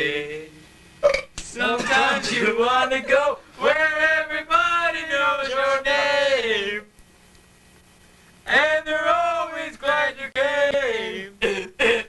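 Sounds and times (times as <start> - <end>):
men singing long wavering notes: 0.0 - 0.6, 1.6 - 6.9, 8.5 - 11.4.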